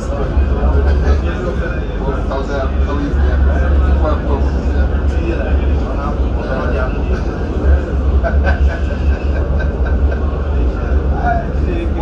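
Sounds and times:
indistinct voices: 0.0 - 12.0
tram rumble: 0.0 - 12.0.

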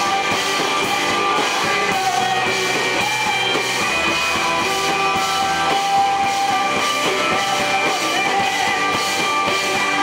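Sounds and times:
bass guitar: 0.0 - 10.0
drum kit steady beat: 0.0 - 10.0
electric guitar sustained notes: 0.0 - 10.0.

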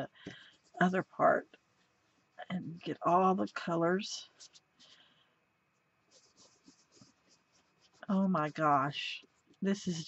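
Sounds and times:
fingertips rubbing cardstock: 6.1 - 9.3.

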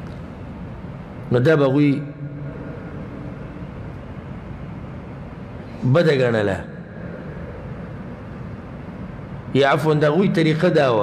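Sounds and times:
low hum and hiss of room noise: 0.0 - 11.0.

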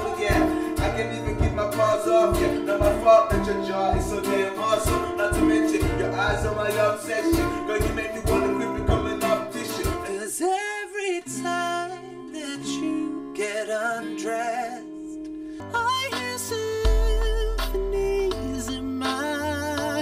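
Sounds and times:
steady beat: 0.0 - 10.1, 16.8 - 19.4
pop song with acoustic guitar: 0.0 - 20.0.

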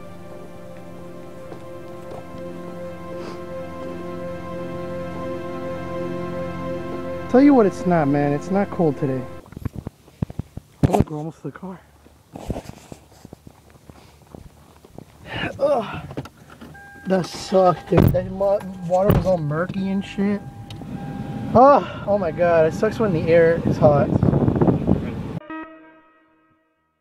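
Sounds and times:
guitar ringing note: 0.0 - 9.4, 16.8 - 23.9, 25.4 - 27.0
car interior road noise: 0.0 - 10.8, 14.3 - 25.4
person talking: 7.3 - 9.4, 17.1 - 20.5, 21.6 - 24.2.

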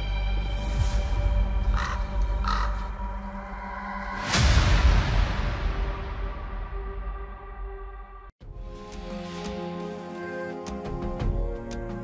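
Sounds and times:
crow cawing: 1.6 - 3.5.

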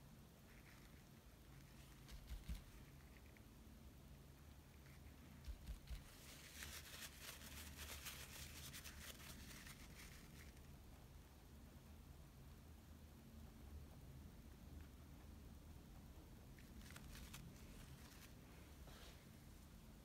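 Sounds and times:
paper towel crinkling: 5.4 - 10.6, 16.7 - 19.2.

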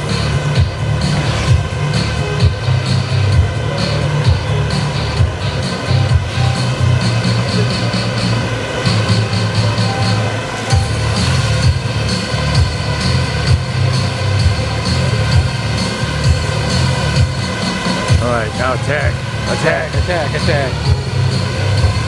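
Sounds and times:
electronic music with pulsing beat: 0.0 - 22.0
quadcopter drones buzzing: 0.0 - 22.0.

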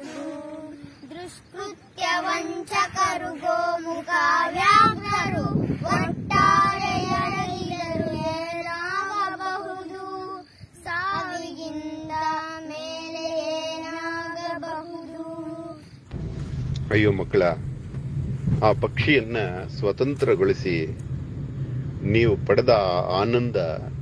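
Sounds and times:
child singing: 0.0 - 15.9
low rumble: 16.0 - 24.0.

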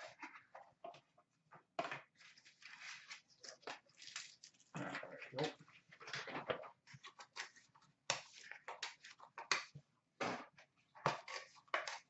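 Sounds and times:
plastic wrapper crinkling and tearing: 2.2 - 5.4.

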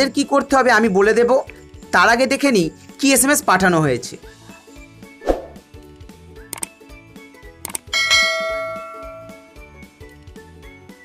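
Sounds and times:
light background music: 0.0 - 11.0
notification bell chime: 8.0 - 9.6.

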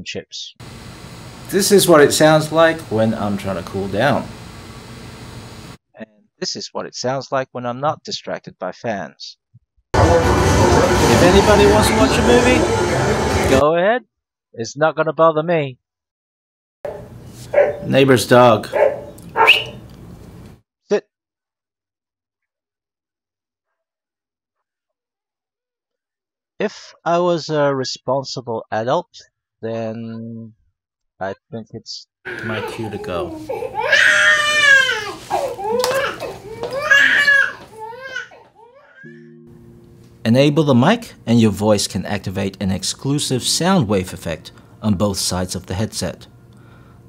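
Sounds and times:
dog barking: 16.9 - 17.9, 18.6 - 19.8
baby crying loudly: 32.3 - 39.1.

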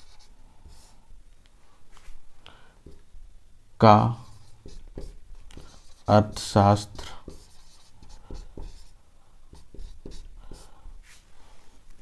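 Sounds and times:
marker writing on whiteboard: 0.0 - 1.0, 2.8 - 3.1, 4.0 - 10.8.

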